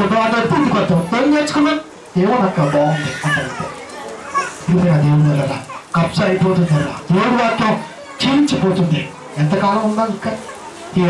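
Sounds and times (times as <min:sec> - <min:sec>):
man's amplified voice: 0:00.0 - 0:03.8, 0:04.7 - 0:11.0
children chattering and calling: 0:00.0 - 0:11.0.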